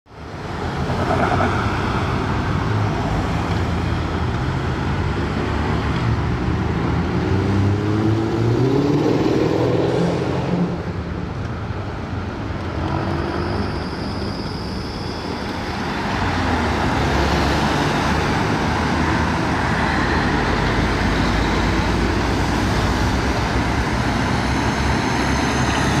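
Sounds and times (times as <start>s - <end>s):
road noise: 0.1s - 26.0s
traffic driving past: 0.2s - 26.0s.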